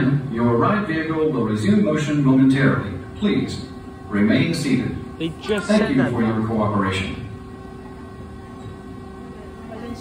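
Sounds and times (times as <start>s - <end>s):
steady low building hum: 0.0s - 10.0s.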